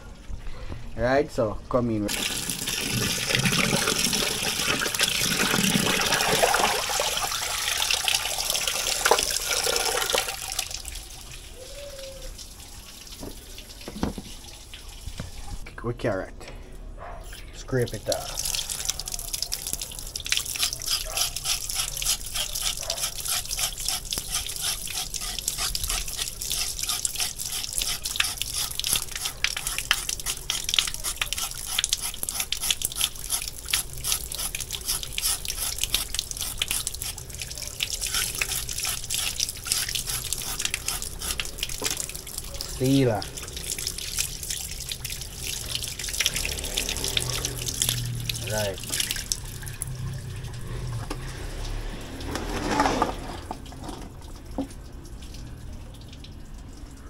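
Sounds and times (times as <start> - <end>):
tap water running into sink: 2.1 - 11.4, 13.0 - 15.4, 17.8 - 57.0
knife scraping carrot: 20.5 - 37.3, 37.9 - 41.5.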